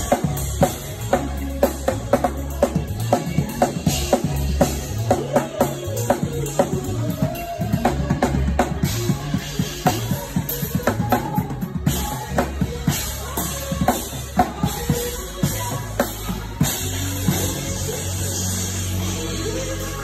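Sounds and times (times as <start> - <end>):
acoustic drum kit: 0.0 - 20.0.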